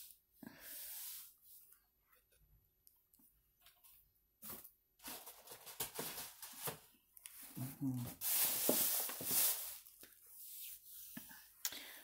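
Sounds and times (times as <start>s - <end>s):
handling rustles: 8.2s - 9.9s.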